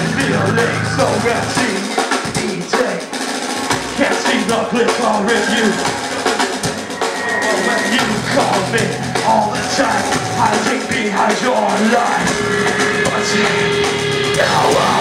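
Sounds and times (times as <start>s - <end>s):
drums hitting: 0.0s - 15.0s
heavy metal band playing: 0.0s - 15.0s.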